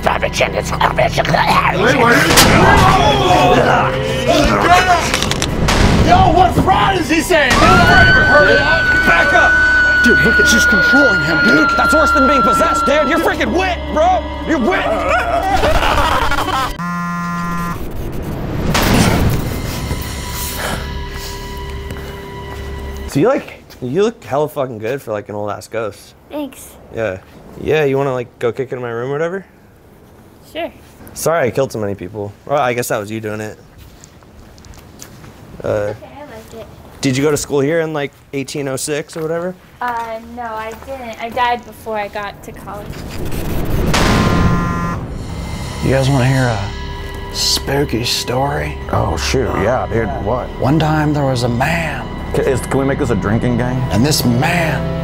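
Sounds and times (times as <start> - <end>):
man speaking: 6.1 - 15.2, 47.4 - 55.0
electronic glitch buzz: 16.7 - 20.1, 43.0 - 47.6
short buzzing tone: 16.8 - 18.3, 43.9 - 45.5.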